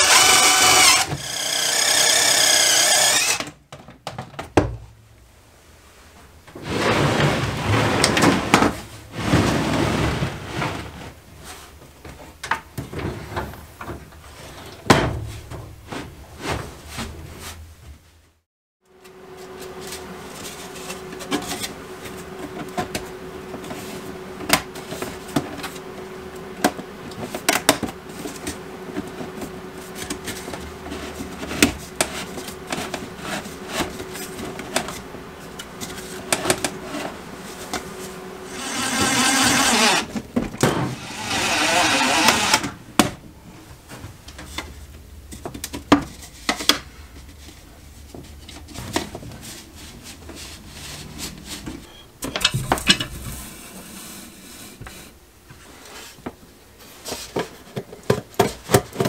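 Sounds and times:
cordless drill running: 0:00.0 - 0:03.5, 0:38.4 - 0:40.1, 0:40.9 - 0:42.7
steady hum: 0:18.9 - 0:57.6.

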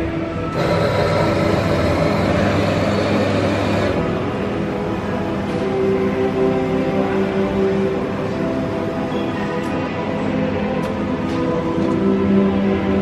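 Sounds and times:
background music: 0:00.0 - 0:13.0
coffee machine whirring: 0:00.4 - 0:05.6.

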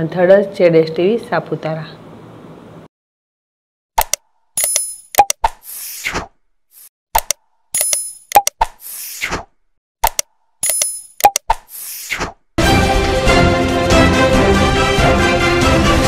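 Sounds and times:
click: 0:04.0 - 0:05.4, 0:10.0 - 0:11.6.

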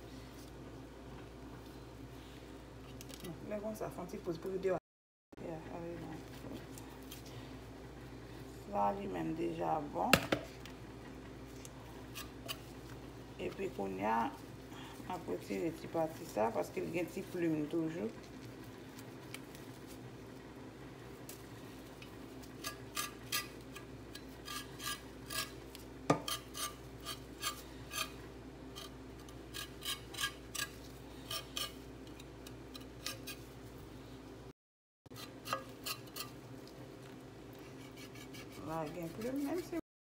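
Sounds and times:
knife scraping skin: 0:11.6 - 0:12.8, 0:22.4 - 0:28.2, 0:28.8 - 0:33.5, 0:35.1 - 0:36.4, 0:37.6 - 0:39.8.

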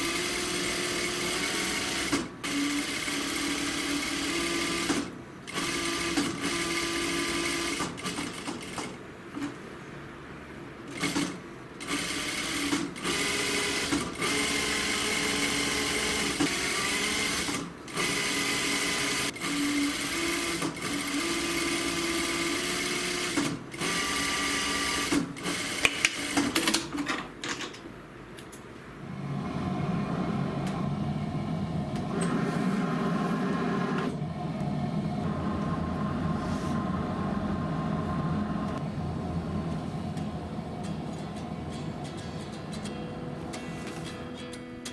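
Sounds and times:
sewing machine stitching: 0:00.0 - 0:09.0, 0:10.9 - 0:27.0
low steady hum: 0:34.1 - 0:43.9.

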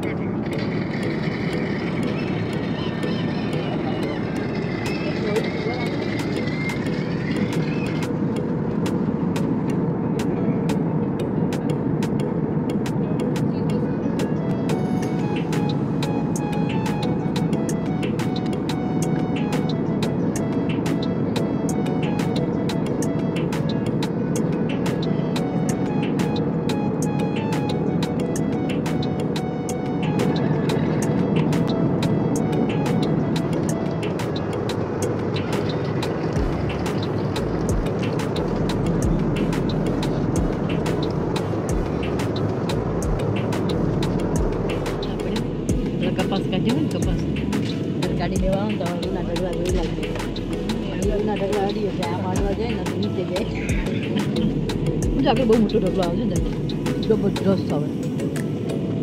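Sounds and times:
background music with steady beat: 0:00.0 - 0:59.0
jet airliner cabin drone: 0:00.0 - 0:59.0.

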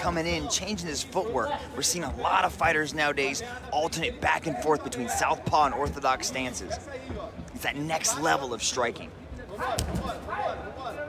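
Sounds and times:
arena crowd noise: 0:00.0 - 0:11.0
man talking: 0:00.0 - 0:11.0.

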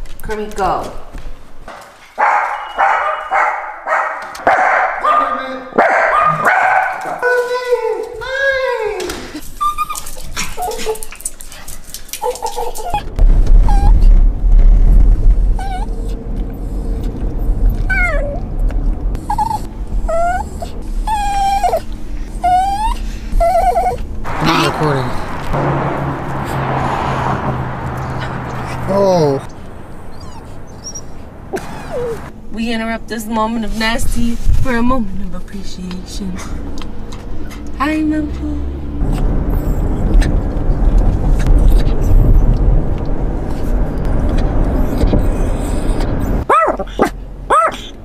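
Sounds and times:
low road rumble: 0:00.0 - 0:48.0
dogs barking and yipping: 0:02.0 - 0:07.6, 0:09.4 - 0:14.0, 0:15.5 - 0:18.4, 0:19.2 - 0:24.8, 0:26.6 - 0:32.3, 0:43.5 - 0:48.0
dog whining and crying: 0:09.3 - 0:11.1, 0:12.2 - 0:14.2, 0:15.5 - 0:18.5, 0:19.2 - 0:24.1, 0:29.4 - 0:32.3, 0:39.5 - 0:40.3, 0:41.4 - 0:42.6, 0:43.6 - 0:48.0.

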